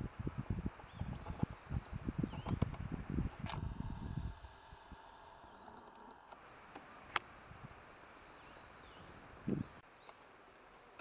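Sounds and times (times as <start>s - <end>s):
wind rumbling on microphone: 0.0s - 5.1s, 9.0s - 9.8s
faint steady hum: 0.0s - 11.0s
single click: 3.4s - 3.6s.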